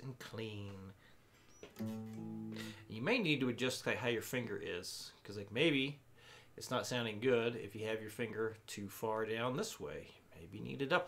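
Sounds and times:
electric guitar chord strummed: 0:01.8 - 0:03.0.

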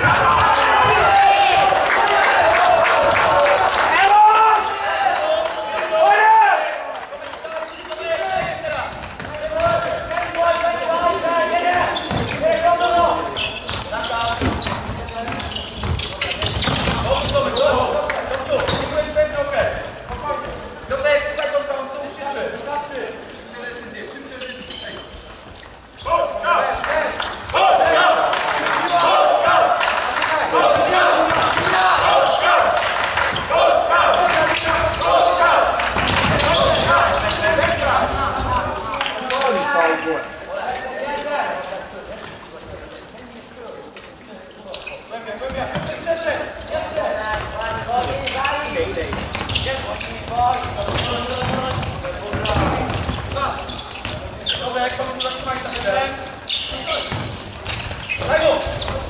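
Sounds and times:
people shouting: 0:00.0 - 0:06.8, 0:27.5 - 0:38.2.

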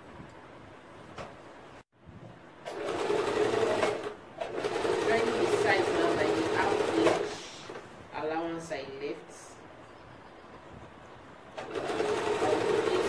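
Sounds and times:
sewing machine stitching: 0:02.6 - 0:07.8, 0:11.6 - 0:13.0.

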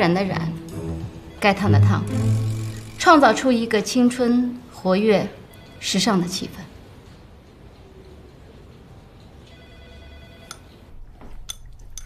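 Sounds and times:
low steady hum: 0:00.0 - 0:08.3.

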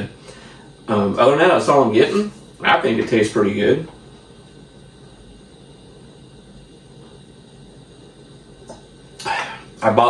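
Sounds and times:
faint hum: 0:00.0 - 0:10.0
low background hiss: 0:00.0 - 0:10.0.

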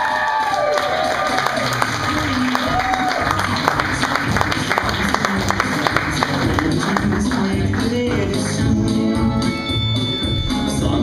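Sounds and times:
audience applauding: 0:00.0 - 0:08.7.

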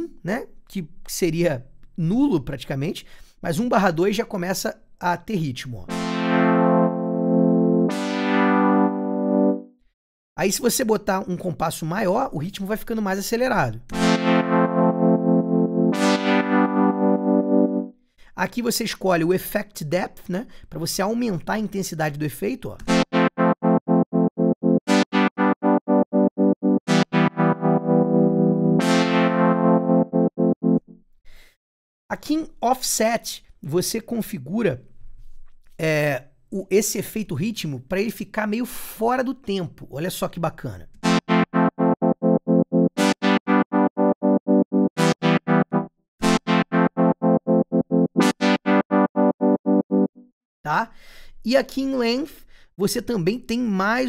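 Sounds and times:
pulsing synthesizer chord: 0:05.9 - 0:09.7, 0:13.9 - 0:17.9, 0:22.9 - 0:30.9, 0:41.0 - 0:50.3.

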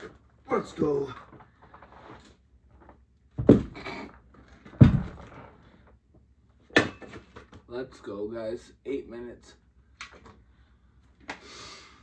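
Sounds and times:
dumbbells thudding on floor: 0:03.3 - 0:03.9, 0:04.7 - 0:05.3.

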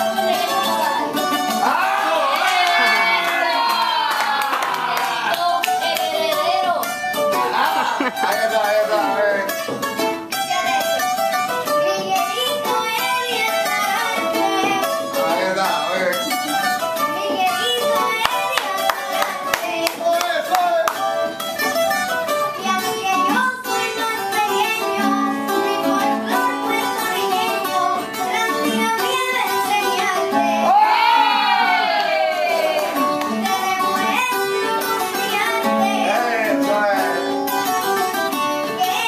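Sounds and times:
acoustic guitars playing: 0:00.0 - 0:39.0
person singing: 0:10.4 - 0:20.8, 0:22.3 - 0:39.0.

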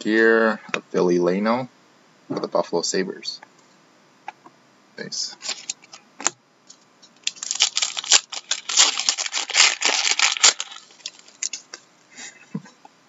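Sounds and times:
wrapper tearing and crinkling: 0:05.4 - 0:05.9, 0:07.2 - 0:11.8.

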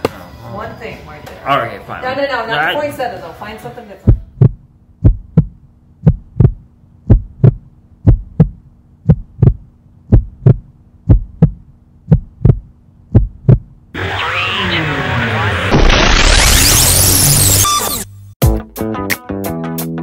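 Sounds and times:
heartbeat double thump: 0:04.1 - 0:13.8.

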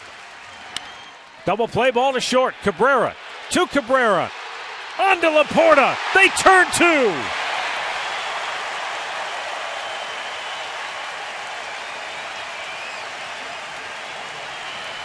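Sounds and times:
crowd cheering and applauding: 0:00.0 - 0:15.0.

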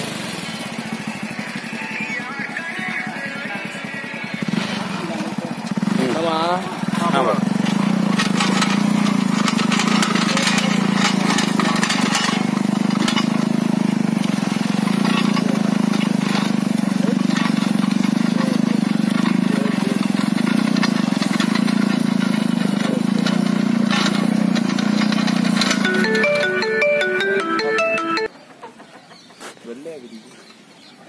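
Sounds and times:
motorcycle engine running: 0:00.0 - 0:28.4
tiller tines clattering in soil: 0:06.9 - 0:27.0.

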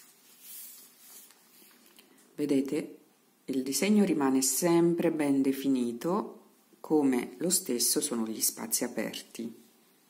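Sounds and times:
faint rustle of fabric: 0:00.0 - 0:02.4.

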